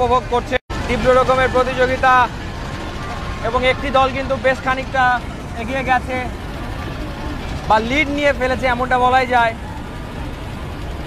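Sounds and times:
man giving race commentary: 0.0 - 2.4, 3.4 - 6.4, 7.6 - 9.6
noisy background rumble: 0.0 - 11.0.

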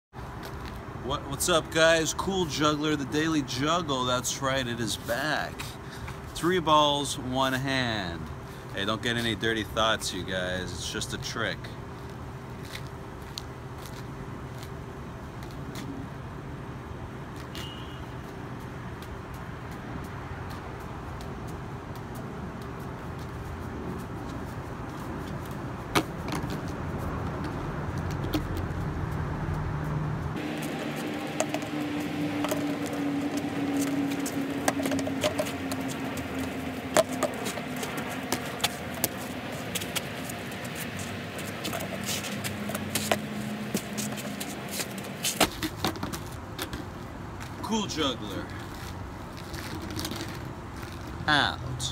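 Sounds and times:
traffic hum: 0.1 - 51.9.

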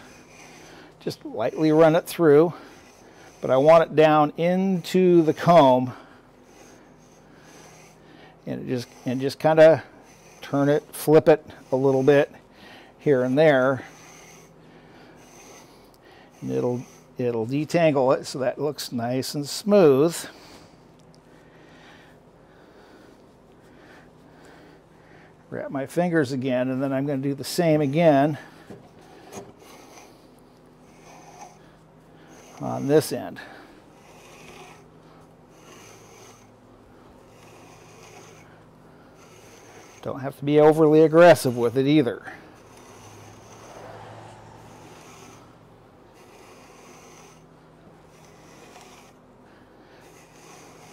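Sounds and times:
fibers rustling through metal comb: 30.9 - 36.5.

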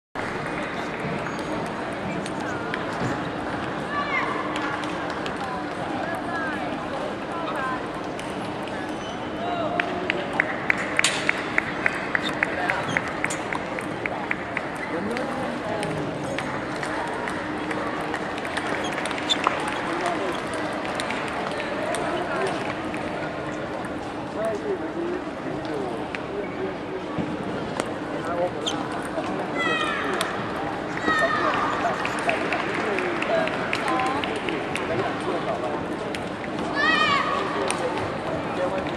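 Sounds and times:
hall chatter: 0.2 - 38.9
many voices: 0.2 - 38.9
shoe squeaks on floor: 18.7 - 19.8, 28.6 - 28.9.

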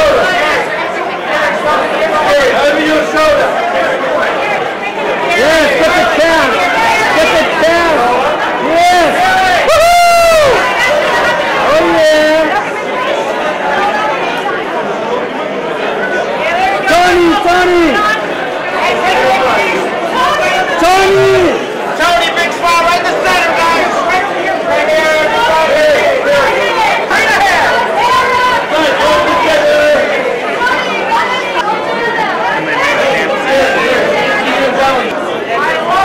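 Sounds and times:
babble of overlapping voices: 0.0 - 36.0
crowd chatter: 0.0 - 36.0.

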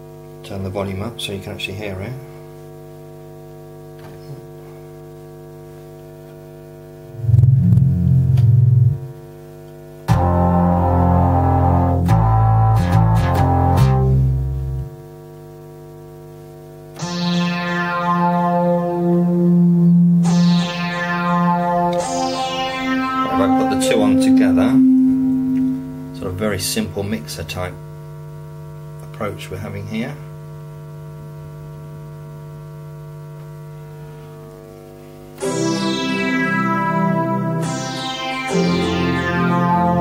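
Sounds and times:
steady mains hum: 0.0 - 40.0
synthesizer bass notes: 7.0 - 9.2, 17.0 - 27.1, 35.4 - 40.0
bright synthesizer notes: 7.1 - 9.1, 17.0 - 27.3, 35.4 - 40.0.

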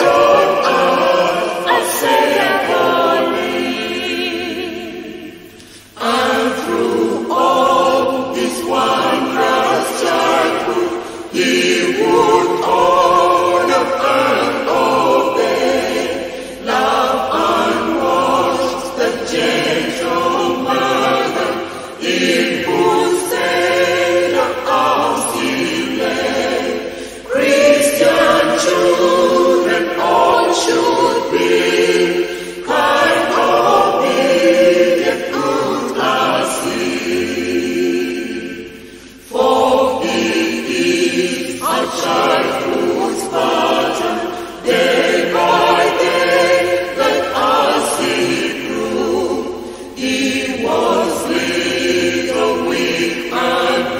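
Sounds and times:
choir singing a hymn: 0.0 - 53.9.

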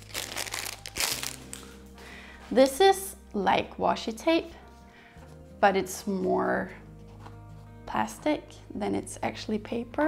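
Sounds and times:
plastic wrapper crinkling: 0.0 - 1.9.

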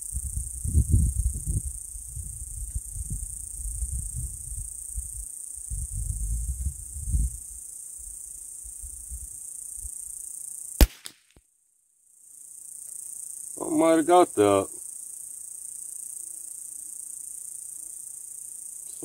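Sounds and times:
high-pitched insect buzz: 0.0 - 10.9, 12.1 - 19.0
rifle shot crack: 10.8 - 11.2.

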